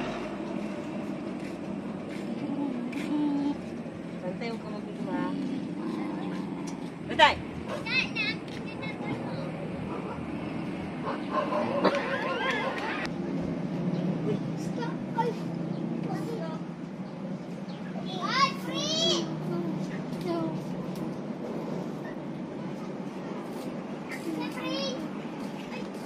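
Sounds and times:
road traffic hum: 0:00.0 - 0:26.0
distant voice: 0:02.3 - 0:13.1
children shouting while playing: 0:18.2 - 0:19.3.

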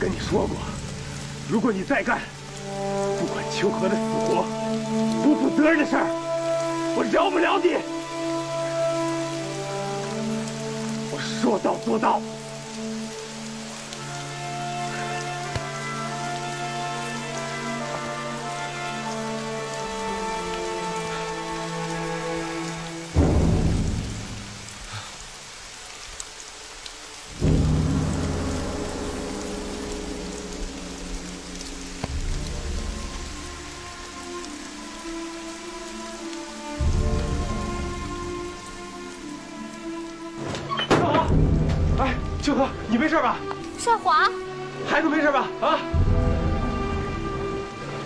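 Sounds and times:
music with long held notes: 0:00.0 - 0:48.0
steady rain: 0:00.0 - 0:48.0.

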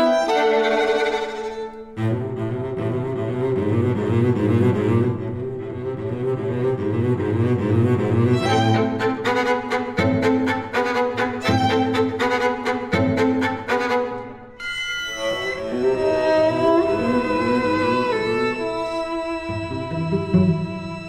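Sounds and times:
bowed string music: 0:00.0 - 0:21.0.

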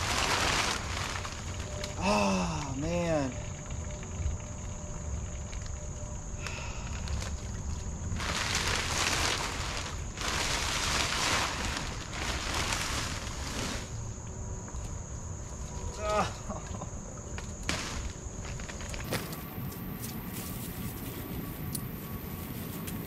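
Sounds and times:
plastic sheeting crinkling: 0:00.0 - 0:03.4, 0:08.1 - 0:14.0, 0:17.7 - 0:23.0
high insect drone: 0:00.0 - 0:23.0.

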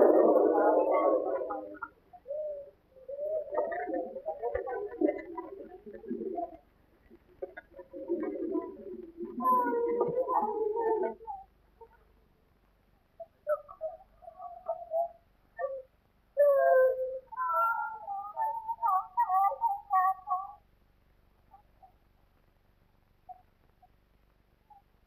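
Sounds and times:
high-pitched wavering human cries: 0:00.0 - 0:04.2.

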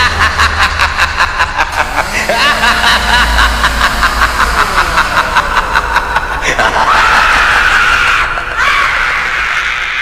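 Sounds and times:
sampled voice chuckling: 0:00.0 - 0:08.6.

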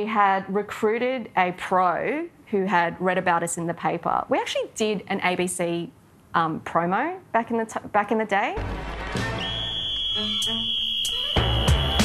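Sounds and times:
whistle blast: 0:09.2 - 0:12.0
music with beat: 0:10.4 - 0:12.0.

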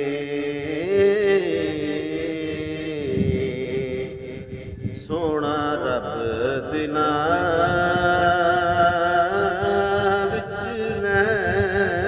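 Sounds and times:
man singing slow melody: 0:00.0 - 0:12.0.

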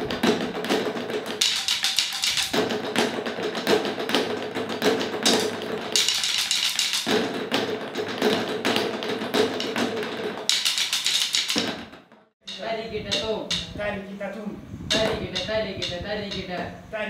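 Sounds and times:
sticks beating on tyres and bucket: 0:00.0 - 0:13.8, 0:14.9 - 0:16.6.

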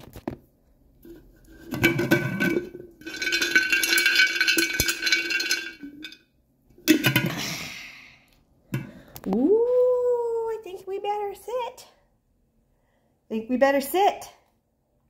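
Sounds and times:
metal jar lid clattering: 0:01.1 - 0:06.2, 0:06.8 - 0:07.4.

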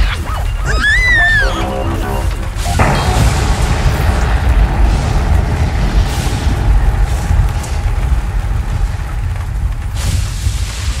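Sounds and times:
deep rumble: 0:00.6 - 0:11.0
hiss: 0:02.6 - 0:11.0.

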